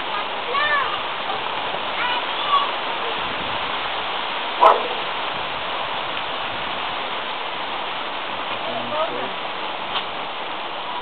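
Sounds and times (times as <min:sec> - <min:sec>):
heavy rain hiss: 0:00.0 - 0:11.0
dog bark: 0:04.6 - 0:05.1.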